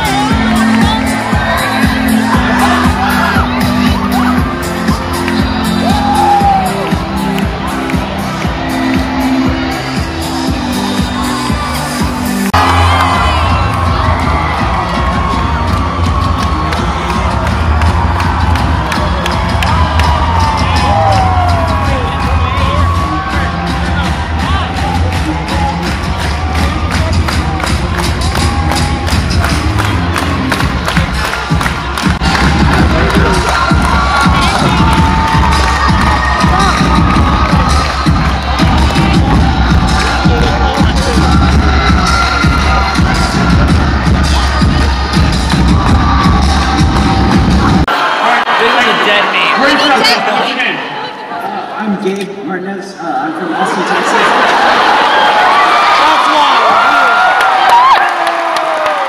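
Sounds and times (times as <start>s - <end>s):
loud music with heavy bass: 0.0s - 51.1s
crowd cheering and whooping: 0.0s - 51.7s, 53.5s - 59.0s.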